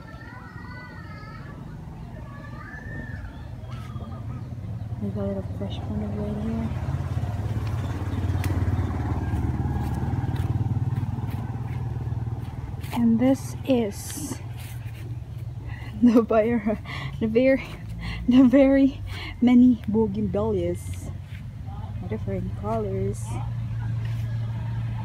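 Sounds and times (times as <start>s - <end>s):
passing vehicle engine drone: 3.6s - 25.0s.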